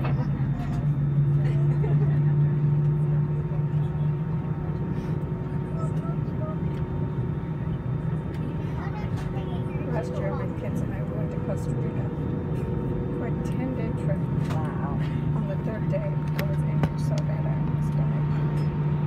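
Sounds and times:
airplane cabin drone: 0:00.0 - 0:19.0.

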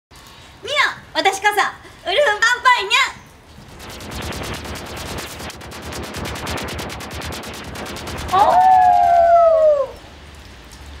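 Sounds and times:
wolf howling: 0:08.3 - 0:10.0.

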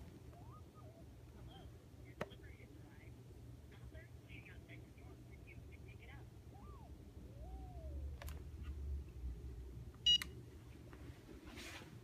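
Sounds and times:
phone handset beep: 0:10.0 - 0:10.3.

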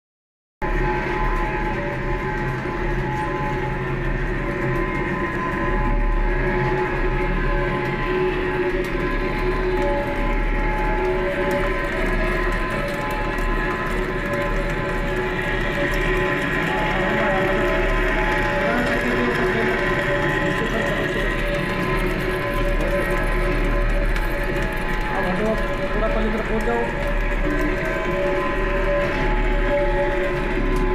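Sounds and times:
lathe machining steel: 0:00.7 - 0:30.9.

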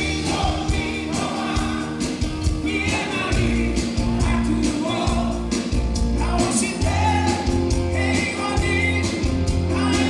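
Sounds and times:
backing vocalists singing: 0:00.0 - 0:10.0
drums: 0:00.0 - 0:10.0
electric bass: 0:00.0 - 0:10.0
electric guitar: 0:00.0 - 0:10.0
man singing lead vocals: 0:00.0 - 0:10.0.

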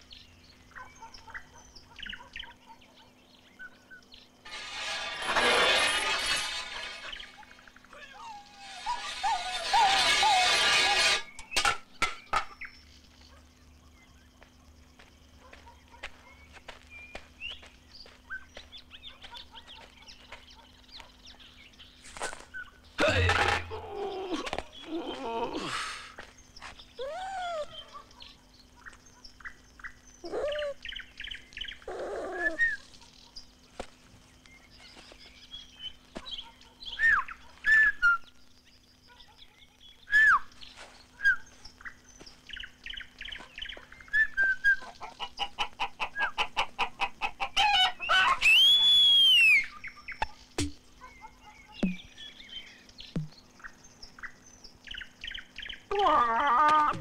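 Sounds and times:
gliding bird whistles: 0:48.4 - 0:49.8.

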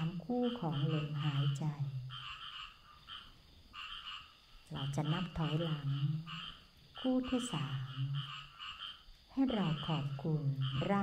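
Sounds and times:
woman speaking: 0:00.0 - 0:02.2, 0:04.7 - 0:06.4, 0:07.0 - 0:08.3, 0:09.3 - 0:11.0
frogs croaking: 0:00.0 - 0:11.0.

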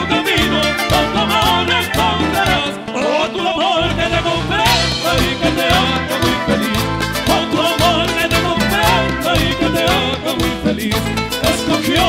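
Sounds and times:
guitars: 0:00.0 - 0:12.0
man singing with vibrato: 0:00.0 - 0:12.0
steady beat: 0:04.1 - 0:12.0.

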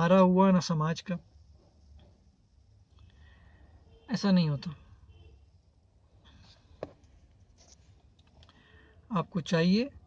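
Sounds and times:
faint steady low hum: 0:00.0 - 0:10.0
soft rustles: 0:06.3 - 0:08.2.

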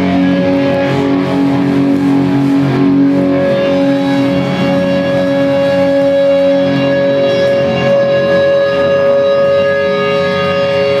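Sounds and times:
electric guitar feedback: 0:00.0 - 0:11.0.

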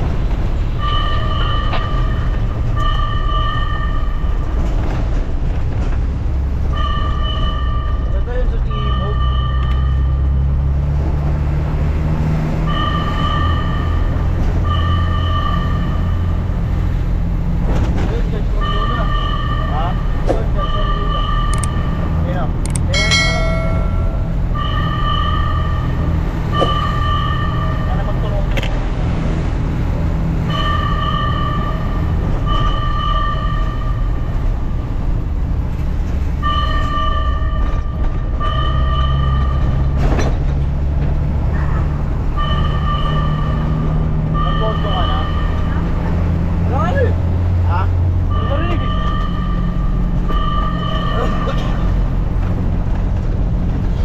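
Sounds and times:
truck engine low drone: 0:00.0 - 0:54.0
fire truck horn double blasts: 0:30.4 - 0:34.2, 0:42.3 - 0:46.0, 0:48.3 - 0:52.2.

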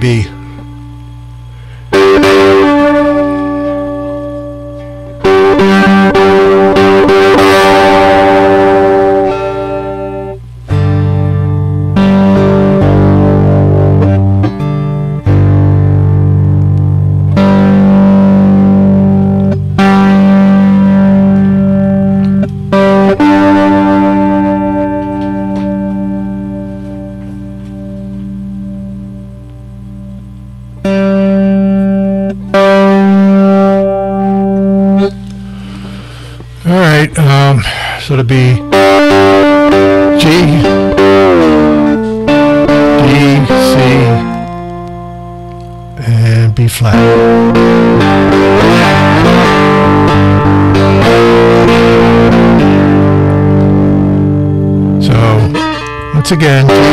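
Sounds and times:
slide electric guitar: 0:00.0 - 0:56.9.

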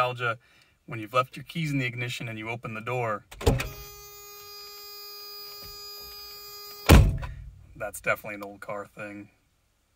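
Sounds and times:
car door slamming: 0:03.4 - 0:03.8, 0:06.8 - 0:07.6
car warning buzzer: 0:03.6 - 0:07.0.

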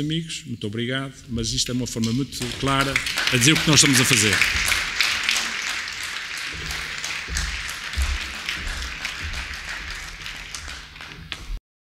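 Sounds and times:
audience applauding: 0:02.4 - 0:11.6.

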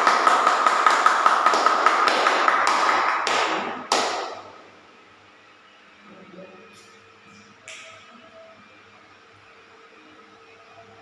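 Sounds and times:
audience clapping: 0:00.0 - 0:04.6.

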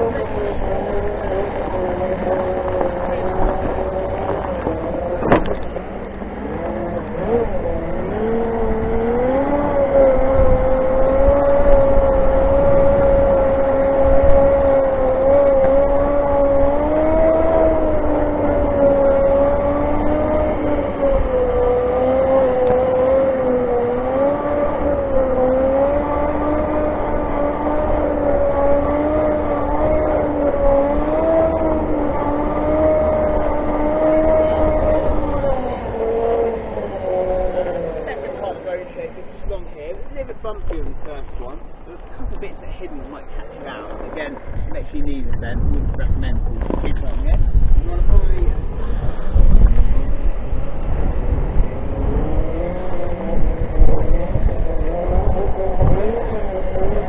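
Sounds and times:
electric drive whining: 0:00.0 - 0:57.0
wind rumble on microphone: 0:00.0 - 0:57.0.

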